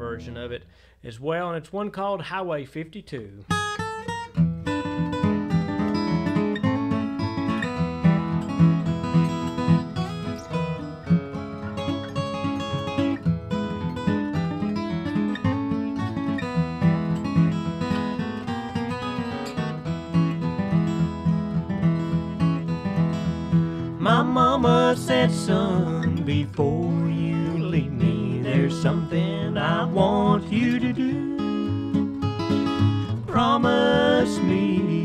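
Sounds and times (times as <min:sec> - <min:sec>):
acoustic guitars playing bluegrass: 0:03.5 - 0:35.0.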